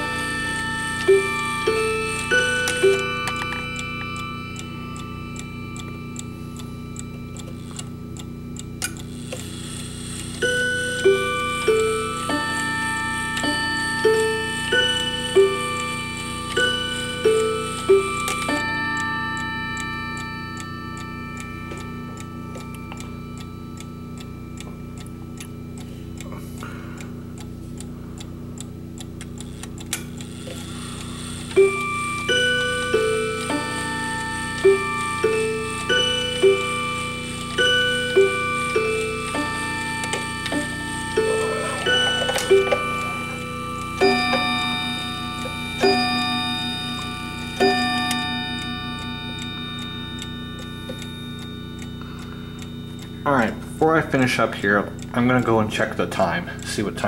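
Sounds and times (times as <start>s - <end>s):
clock chime melody: 0.0s - 57.0s
clock ticking: 0.0s - 57.0s.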